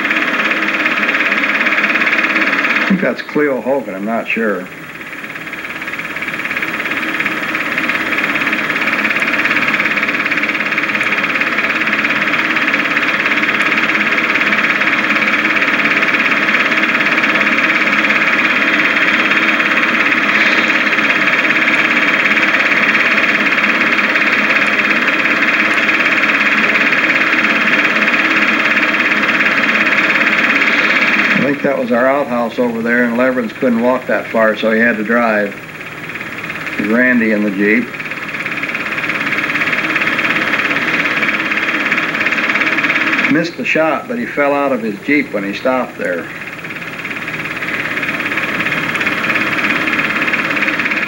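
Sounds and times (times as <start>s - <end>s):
film projector whirring: 0.0s - 51.0s.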